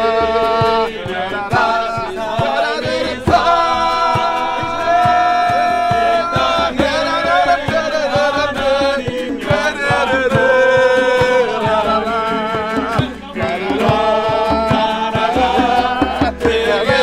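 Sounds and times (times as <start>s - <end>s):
group singing in unison: 0.0s - 17.0s
hand drum beat: 0.0s - 17.0s
strummed acoustic guitars: 0.0s - 17.0s.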